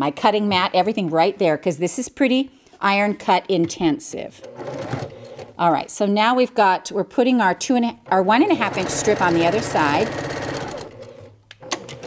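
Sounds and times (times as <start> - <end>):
sewing machine stitching: 4.4 - 5.5, 8.4 - 12.0.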